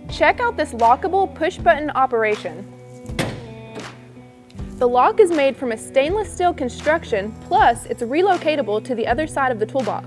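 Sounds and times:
background music: 0.0 - 10.0
lid springing open knock: 3.0 - 4.0
toolbox lock click: 3.1 - 3.9.

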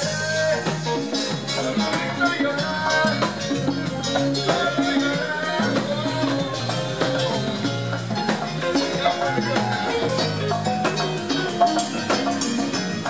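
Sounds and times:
drum kit: 0.0 - 13.0
electric bass line: 0.0 - 13.0
hand drums: 0.0 - 13.0
keyboard notes: 0.0 - 13.0.

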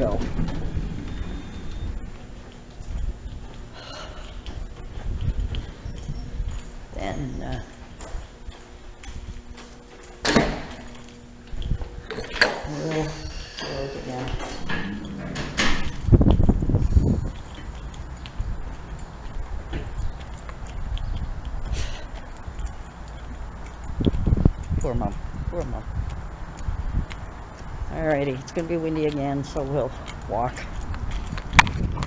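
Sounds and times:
glass door: 0.0 - 2.4, 12.0 - 16.7
wind buffeting microphone: 0.0 - 9.9, 11.2 - 32.0
footsteps: 0.0 - 24.8.

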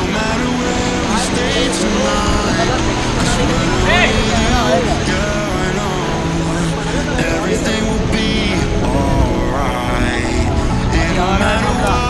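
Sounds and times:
people shouting: 0.0 - 12.0
white-water river rushing: 0.0 - 12.0.

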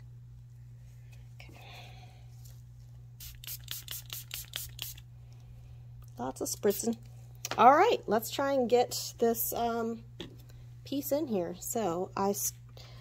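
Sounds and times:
spray bottle hissing sprays: 3.2 - 5.0.

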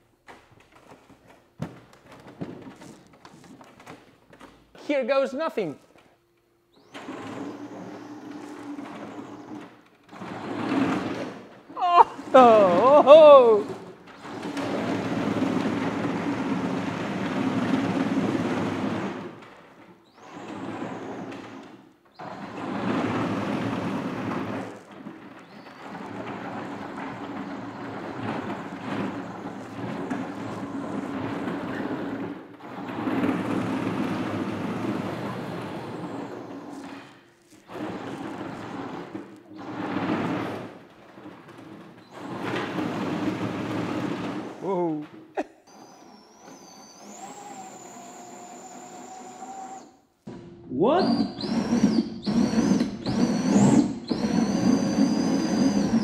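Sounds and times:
electric motors humming: 6.7 - 41.2, 42.1 - 50.0, 51.0 - 56.0.

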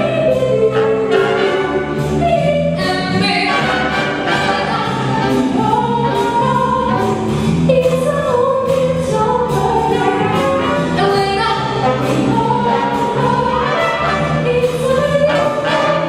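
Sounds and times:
big band playing: 0.0 - 16.0
woman singing into microphone: 2.2 - 3.6, 7.7 - 16.0.

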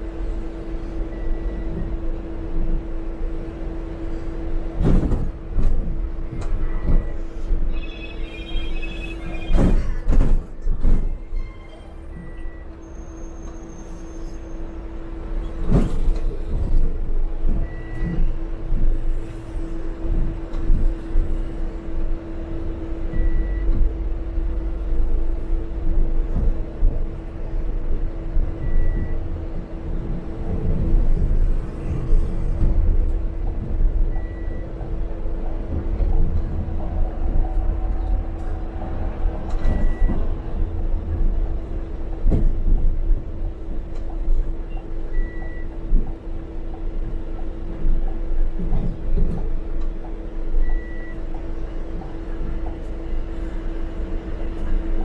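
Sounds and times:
bus engine and road rumble: 0.0 - 55.0
short high beep: 7.7 - 9.6.

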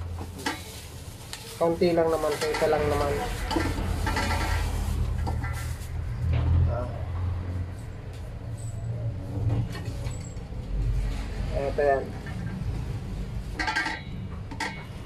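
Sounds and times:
low engine rumble: 0.0 - 15.0.

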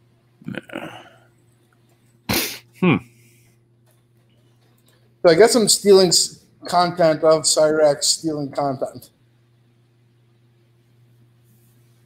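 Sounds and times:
man humming hmm: 0.4 - 1.3, 2.3 - 3.5.

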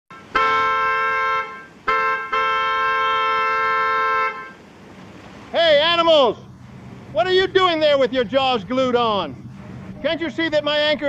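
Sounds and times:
boat horn blasting: 0.1 - 4.7.

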